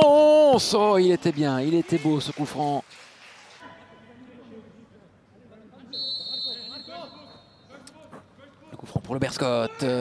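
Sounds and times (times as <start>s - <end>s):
referee's whistle: 5.9s - 7.7s.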